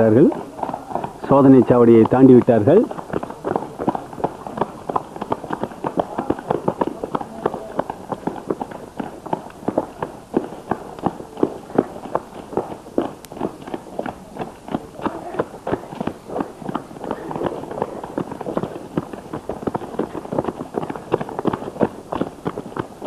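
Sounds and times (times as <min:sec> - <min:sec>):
children running footsteps: 0:00.0 - 0:23.0.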